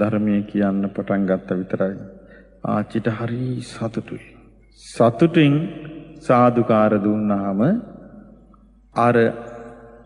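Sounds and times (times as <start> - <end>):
man preaching in chant-like voice: 0.0 - 10.0.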